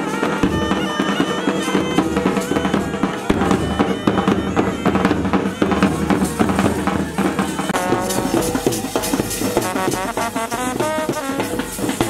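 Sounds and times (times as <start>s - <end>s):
bagpipes playing melody: 0.0s - 12.0s
side drum beats: 0.0s - 12.0s
bass drum beats: 1.9s - 12.0s.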